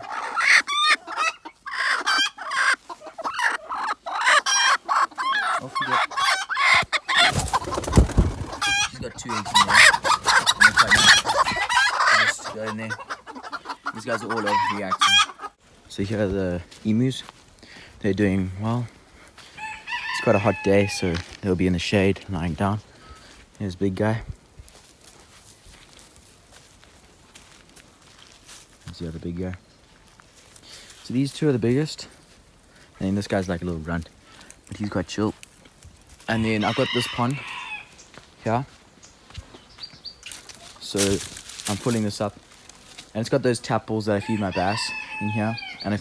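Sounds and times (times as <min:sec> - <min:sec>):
hen clucking: 0:00.0 - 0:16.3, 0:36.3 - 0:38.6, 0:43.2 - 0:46.0
footsteps on dirt and leaves: 0:05.6 - 0:13.0, 0:13.6 - 0:46.0.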